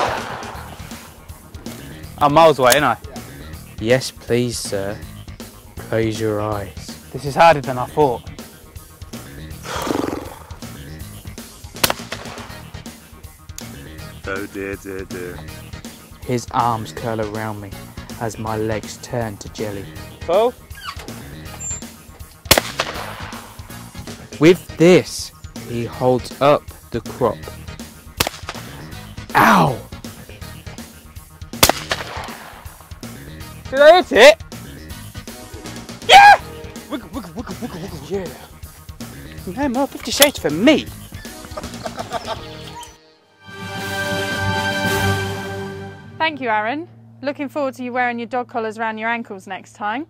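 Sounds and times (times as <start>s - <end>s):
shotgun shot: 0.0s - 1.1s, 11.8s - 12.7s, 22.5s - 23.7s, 28.2s - 28.7s, 31.6s - 32.8s
background music: 0.0s - 50.0s.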